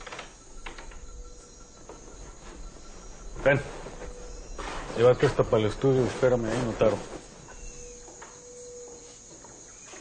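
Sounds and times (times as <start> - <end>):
faint background ambience: 0.0 - 10.0.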